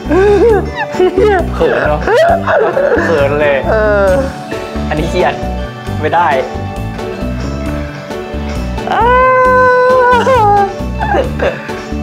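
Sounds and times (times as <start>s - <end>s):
background music with a beat: 0.0s - 12.0s
person squealing: 8.8s - 11.2s.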